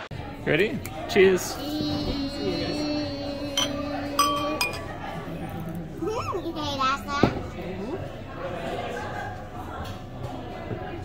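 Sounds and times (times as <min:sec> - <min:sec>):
child's voice: 0:01.6 - 0:04.8, 0:06.0 - 0:07.4
glasses clinking: 0:03.6 - 0:04.9.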